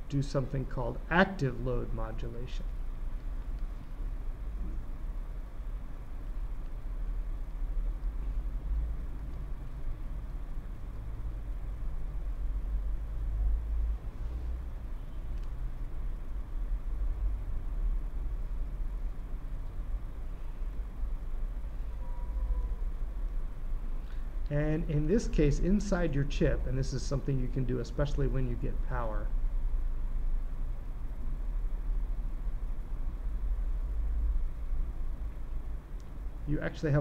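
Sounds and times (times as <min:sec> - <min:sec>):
faint hiss: 0:00.0 - 0:37.0
steady low rumble: 0:00.0 - 0:37.0.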